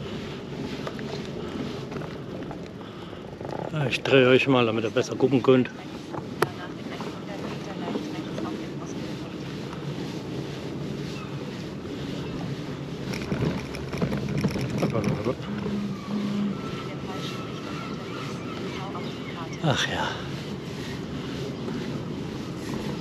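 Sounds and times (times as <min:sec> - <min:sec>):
bicycle tyres rolling on pavement: 0:00.0 - 0:23.0
wind on microphone: 0:05.8 - 0:19.6
faint voices: 0:14.6 - 0:20.6
faint tones: 0:15.0 - 0:19.0.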